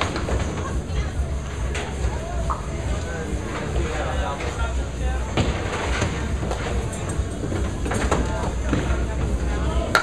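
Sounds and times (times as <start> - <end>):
bowling balls rolling on wooden lanes: 0.0 - 10.0.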